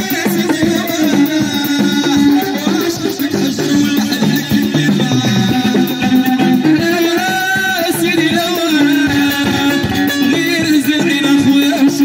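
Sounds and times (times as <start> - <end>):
hand drum beat: 0.0 - 12.0
keyboard: 0.0 - 12.0.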